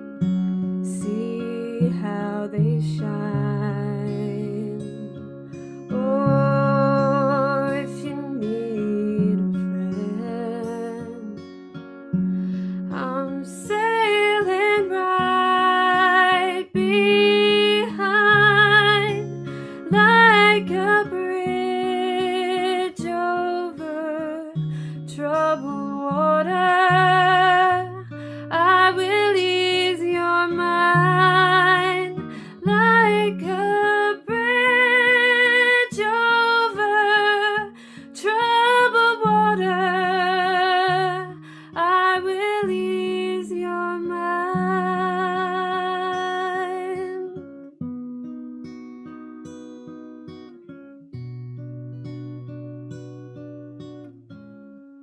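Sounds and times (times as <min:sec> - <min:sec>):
strummed acoustic guitar: 0:00.0 - 0:55.0
woman singing with vibrato: 0:00.9 - 0:05.1, 0:06.0 - 0:11.2, 0:13.0 - 0:19.2, 0:19.8 - 0:47.4.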